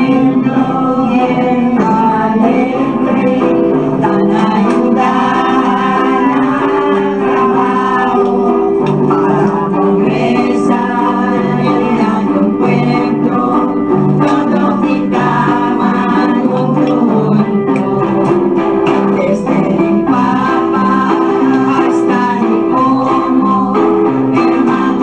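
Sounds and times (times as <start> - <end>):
organ-like keyboard chords: 0.0 - 25.0
person singing: 0.0 - 25.0.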